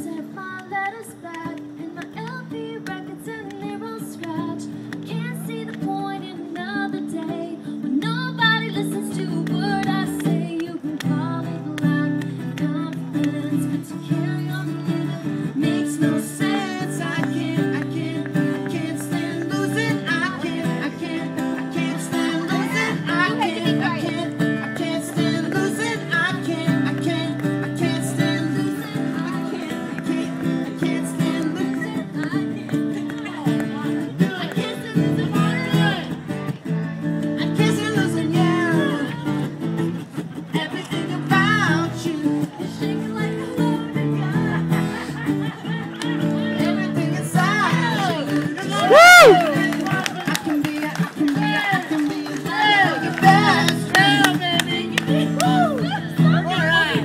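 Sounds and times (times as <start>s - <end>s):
woman singing into microphone: 0.0s - 36.1s, 40.5s - 57.0s
acoustic guitar strummed: 0.0s - 57.0s.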